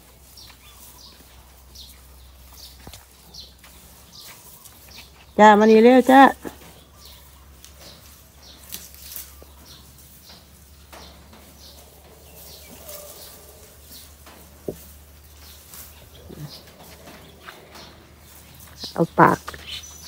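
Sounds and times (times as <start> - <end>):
rustles: 0.0 - 20.0.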